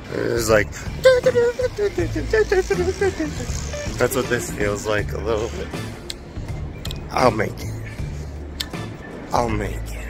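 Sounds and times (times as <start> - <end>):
steady low rumble: 0.0 - 10.0
person's voice in pitched phrases: 0.2 - 5.6.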